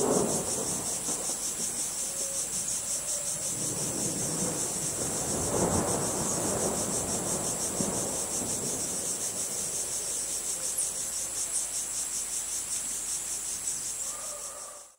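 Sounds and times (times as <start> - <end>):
crickets chirping: 0.0 - 14.9.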